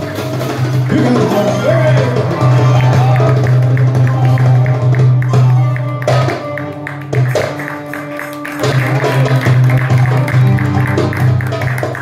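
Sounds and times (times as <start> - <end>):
hand drum: 0.0 - 12.0
violin: 0.0 - 12.0.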